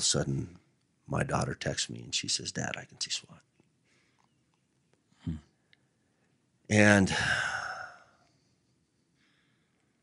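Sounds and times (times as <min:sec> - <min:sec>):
man speaking: 0:00.0 - 0:03.5, 0:06.7 - 0:08.0
man's breathy sigh: 0:07.1 - 0:08.2.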